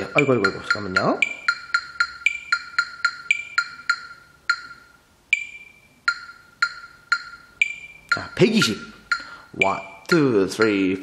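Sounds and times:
electronic metronome beeping: 0.0s - 11.0s.

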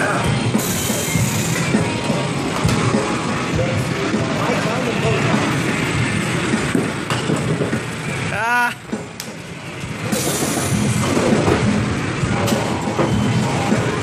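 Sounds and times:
crowd chatter: 0.0s - 6.7s.

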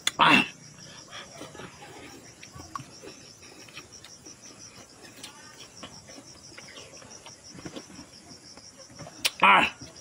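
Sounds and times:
insects chirping trill: 0.0s - 10.0s
person chewing and smacking: 1.3s - 8.2s.

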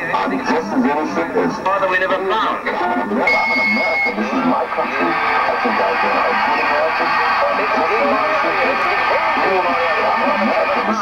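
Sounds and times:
voices on broadcast audio: 0.0s - 11.0s.

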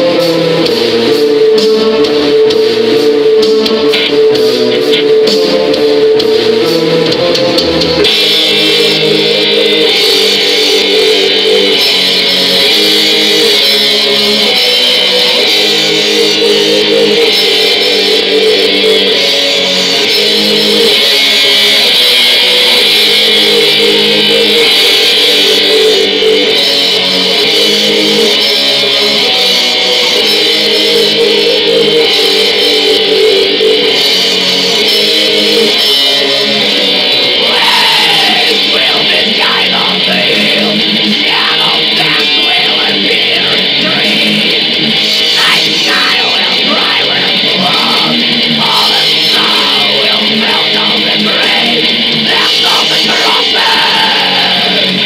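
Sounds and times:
distorted electric guitars: 0.0s - 55.0s.

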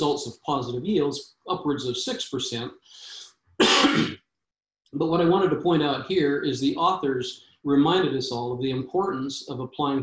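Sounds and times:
man clearing throat: 3.6s - 4.2s.

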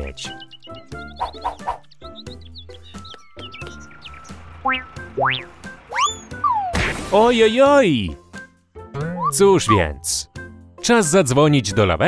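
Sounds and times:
bird-like chirps: 0.0s - 6.7s
cartoon background music: 0.0s - 12.0s.

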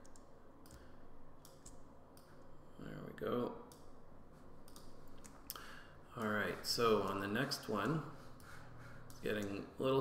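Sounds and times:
quiet room hum: 0.0s - 10.0s.

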